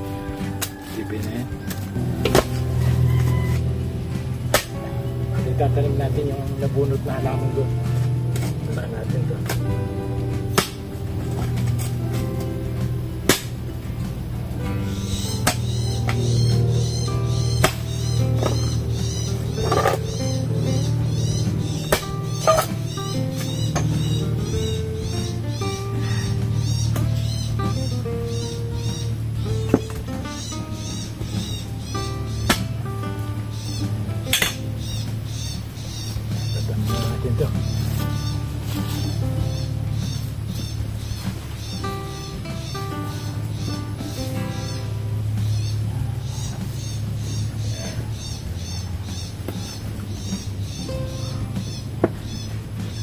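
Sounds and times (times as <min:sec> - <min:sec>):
background music with steady beat: 0:00.0 - 0:53.0
digging tool striking soil: 0:00.5 - 0:05.0, 0:10.4 - 0:12.3, 0:12.9 - 0:16.4, 0:17.5 - 0:20.3, 0:20.9 - 0:24.8.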